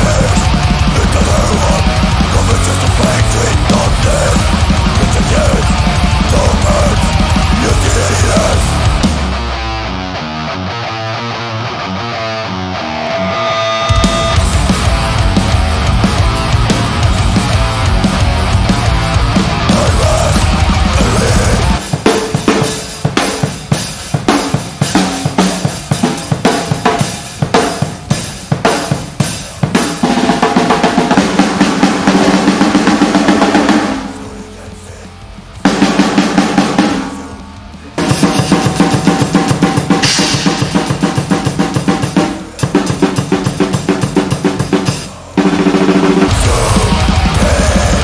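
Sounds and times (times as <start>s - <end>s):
fast metal drumming: 0.0s - 9.5s, 14.0s - 48.0s.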